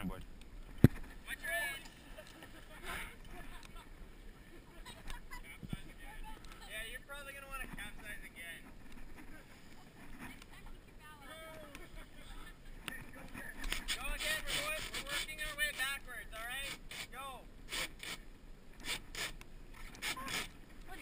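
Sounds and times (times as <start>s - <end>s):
people talking indistinctly: 4.8s - 17.4s.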